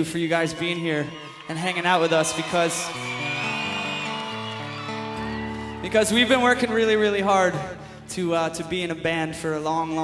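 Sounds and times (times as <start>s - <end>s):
acoustic band sustained notes: 1.9s - 10.0s.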